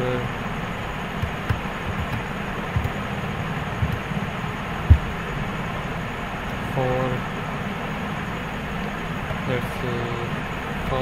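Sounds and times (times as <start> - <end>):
low background rumble: 0.0 - 11.0
dull thumps: 1.2 - 3.0, 3.8 - 4.0, 4.9 - 5.2.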